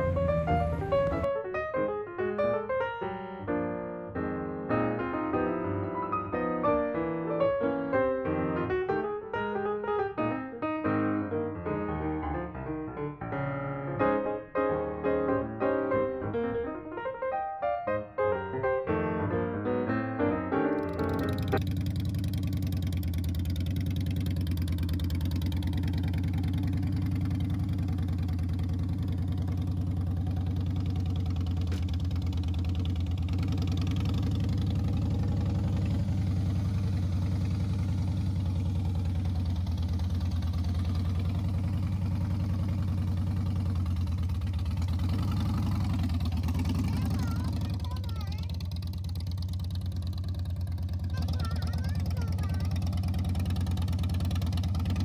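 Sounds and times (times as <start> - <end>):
motorcycle engine idling: 0.0 - 1.3, 20.8 - 55.0.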